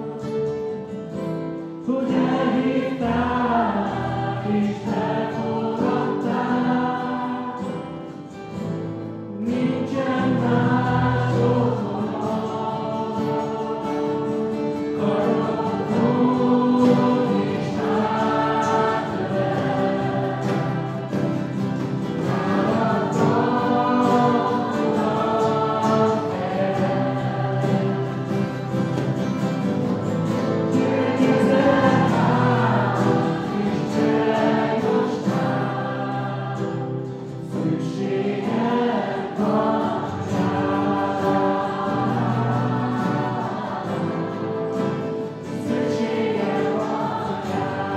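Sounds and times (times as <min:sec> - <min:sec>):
acoustic guitars: 0:00.0 - 0:47.9
group singing worship song: 0:00.0 - 0:47.9.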